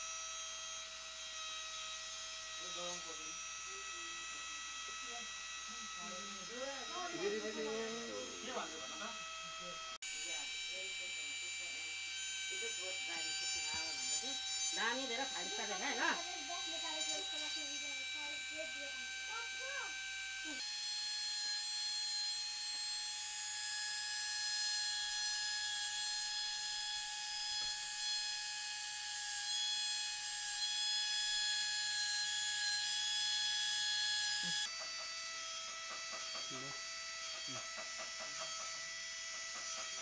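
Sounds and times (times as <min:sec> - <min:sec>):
rotary engraving tool whining: 0:00.0 - 0:40.0.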